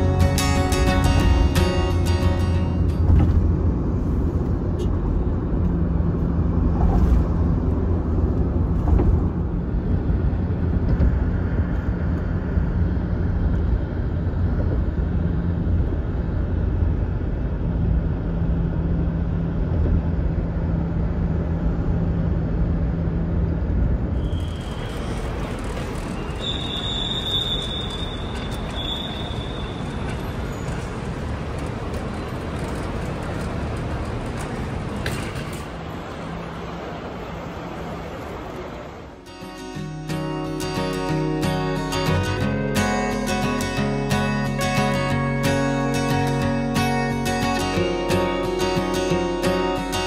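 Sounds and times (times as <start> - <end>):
guitar music: 0.0 - 3.7, 39.2 - 50.0
low engine hum: 0.0 - 50.0
tyre and road rumble: 0.0 - 50.0.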